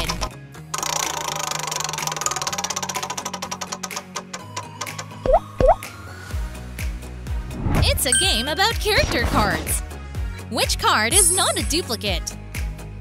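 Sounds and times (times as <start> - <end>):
background music: 0.0 - 13.0.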